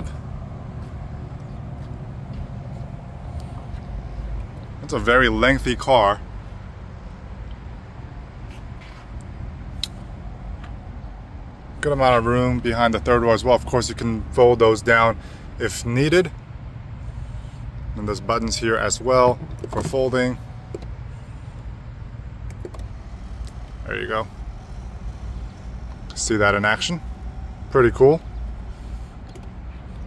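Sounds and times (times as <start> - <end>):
low background rumble: 9.1 - 30.0
seat motor humming: 18.0 - 30.0.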